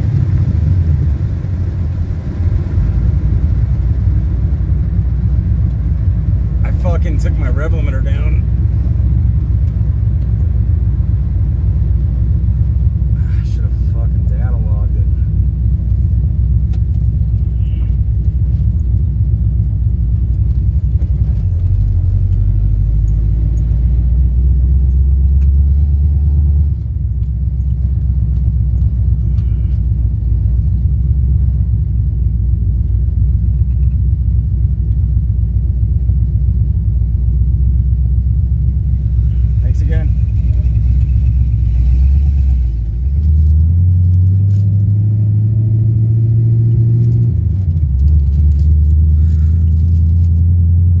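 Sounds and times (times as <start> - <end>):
car engine rumbling inside cabin: 0.0 - 51.0.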